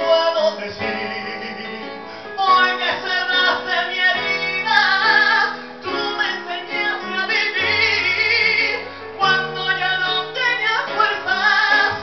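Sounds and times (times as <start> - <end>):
live instrumental accompaniment: 0.0 - 12.0
man singing: 0.0 - 12.0.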